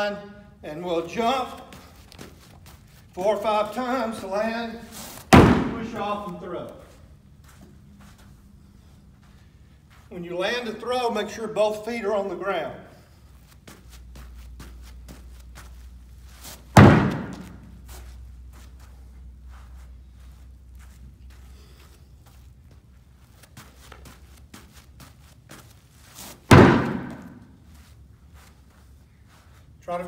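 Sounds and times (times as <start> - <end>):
light hopping footfalls: 1.1 - 10.6, 13.1 - 29.8
ball striking hard target: 5.3 - 6.1, 16.7 - 17.7, 26.5 - 27.5.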